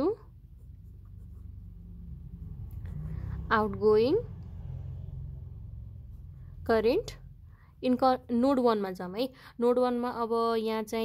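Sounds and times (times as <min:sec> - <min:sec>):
ballpoint pen writing on paper: 0:00.4 - 0:01.8.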